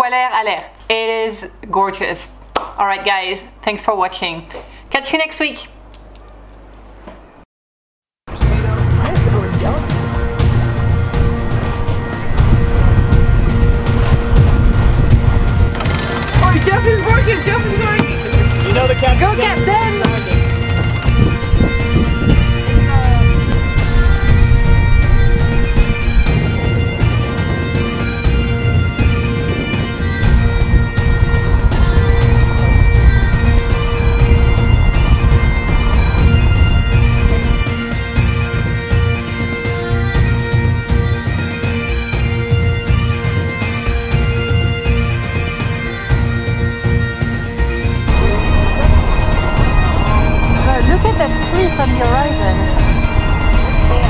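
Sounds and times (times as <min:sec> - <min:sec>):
bagpipe music: 0:08.4 - 0:54.0.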